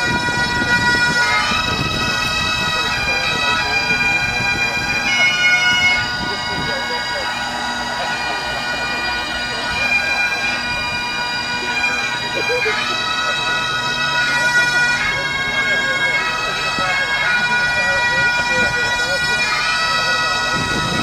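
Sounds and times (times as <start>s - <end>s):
bagpipes playing: 0.0s - 21.0s.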